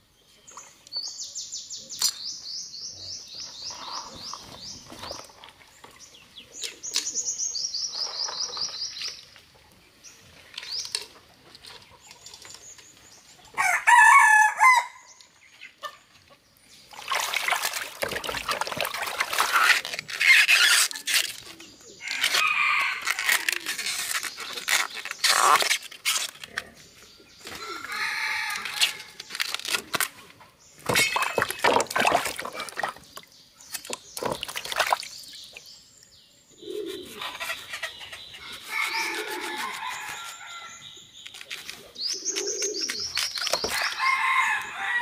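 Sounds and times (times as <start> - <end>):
rooster crowing: 13.6 - 15.1, 27.6 - 29.0, 44.0 - 45.0
crackling of peeling plant bud: 19.2 - 26.8, 27.4 - 30.4, 41.2 - 44.1.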